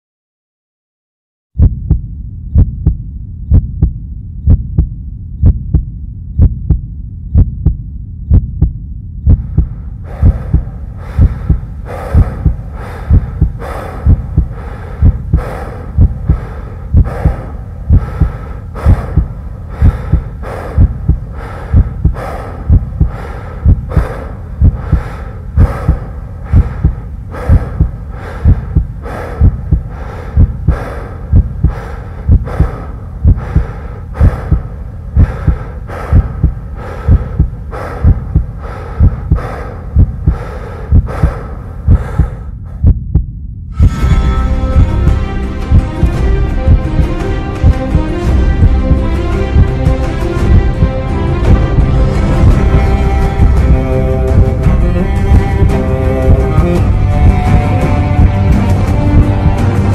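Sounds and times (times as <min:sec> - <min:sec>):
heartbeat thumps: 0:01.6 - 0:59.9.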